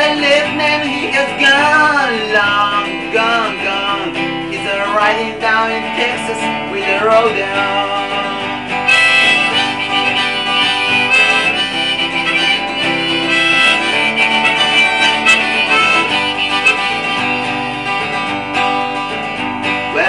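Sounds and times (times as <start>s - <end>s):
acoustic guitar strumming: 0.0s - 20.0s
harmonica playing: 8.0s - 19.1s.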